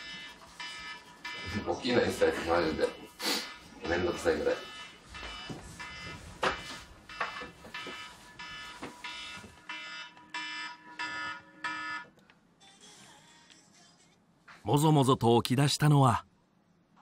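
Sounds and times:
alarm clock beeping: 0.0 - 12.1.

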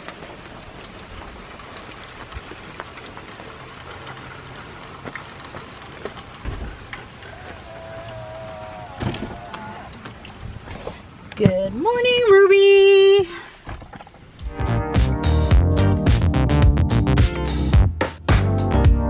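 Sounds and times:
heavy rain falling: 0.0 - 11.4.

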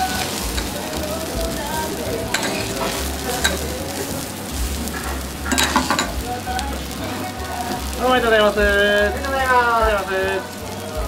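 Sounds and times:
meat patties sizzling on a griddle: 0.0 - 11.0
metal spatula scraping a plate: 5.0 - 6.2.

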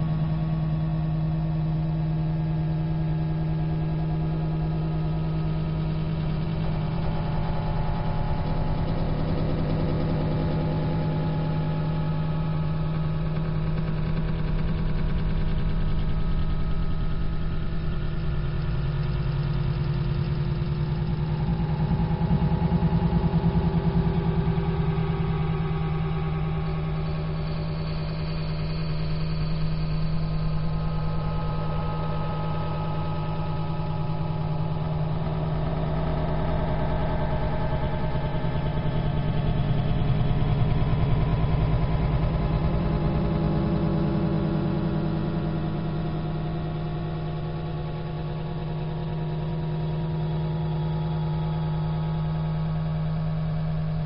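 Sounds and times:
low drone with shifting tones: 0.0 - 54.0.

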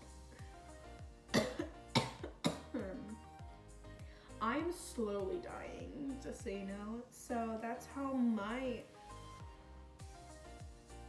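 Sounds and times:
soft background music: 0.0 - 11.0
woman coughing: 1.3 - 3.2.

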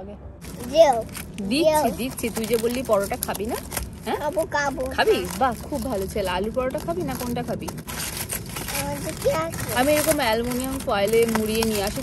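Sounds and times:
aluminium foil crinkling: 0.4 - 12.0
woman speaking: 1.4 - 4.3, 4.9 - 7.8, 9.7 - 12.0.

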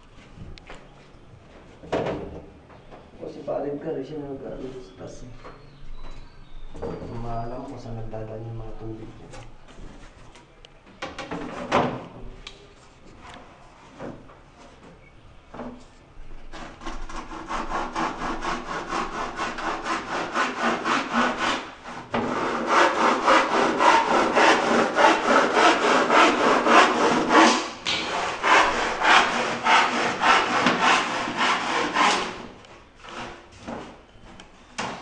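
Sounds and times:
hand saw cutting plywood: 16.5 - 33.5.

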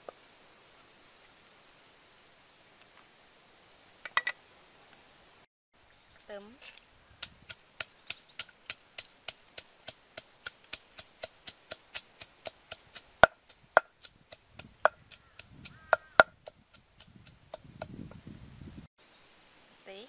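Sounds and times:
wooden pestle pounding in mortar: 9.3 - 17.9.

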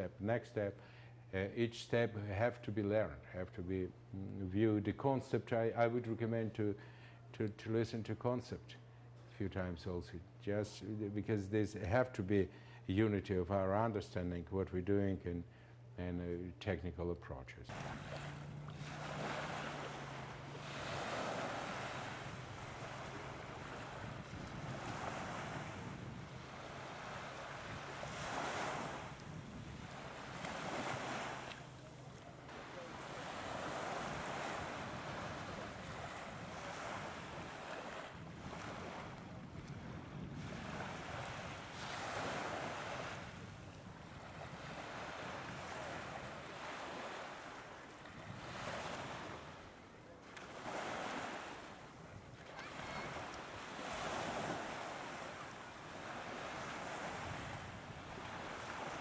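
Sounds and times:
small waves breaking on beach: 17.7 - 59.0.

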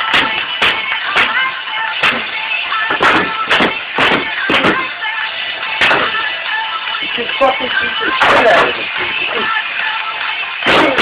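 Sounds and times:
plastic bottle being struck: 0.1 - 1.4, 2.9 - 4.9, 5.8 - 6.2.

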